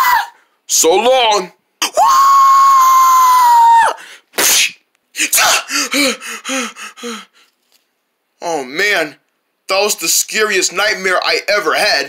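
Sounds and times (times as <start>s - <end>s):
person screaming: 0.0s - 0.4s, 1.8s - 7.3s
person gasping: 3.9s - 4.3s, 5.4s - 7.5s
person speaking: 4.5s - 7.3s.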